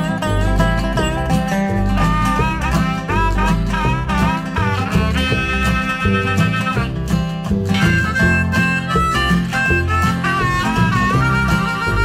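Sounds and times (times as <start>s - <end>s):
acoustic guitar: 0.0s - 12.0s
bass: 0.0s - 12.0s
harmonica solo: 0.0s - 12.0s.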